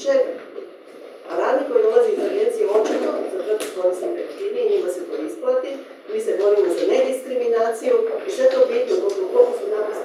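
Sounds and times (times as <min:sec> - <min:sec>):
woman talking: 0:00.0 - 0:00.6, 0:01.2 - 0:10.0.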